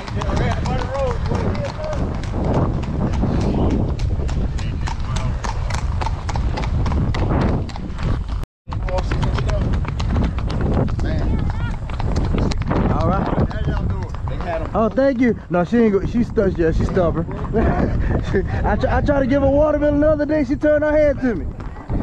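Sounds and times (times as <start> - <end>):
horse hooves on paved road: 0.0 - 22.0.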